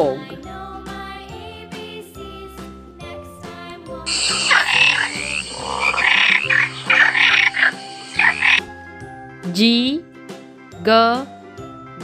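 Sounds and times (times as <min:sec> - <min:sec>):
soft children's music: 0:00.0 - 0:12.0
frog croaking: 0:04.1 - 0:09.1.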